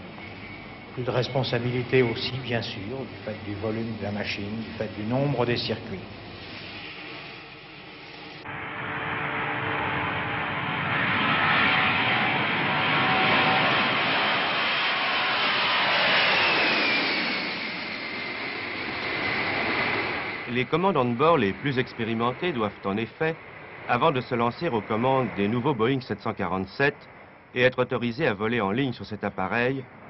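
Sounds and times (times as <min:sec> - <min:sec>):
jet engines roaring: 0:00.0 - 0:27.5
jet engine whine: 0:00.0 - 0:27.6, 0:28.2 - 0:30.0.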